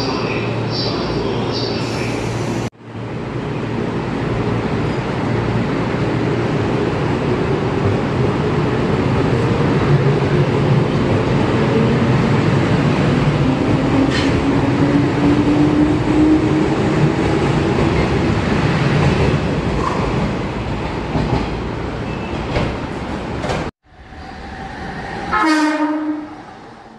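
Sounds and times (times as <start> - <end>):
train running noise: 0.0 - 26.9
train wheels rumbling on rail: 0.1 - 26.9.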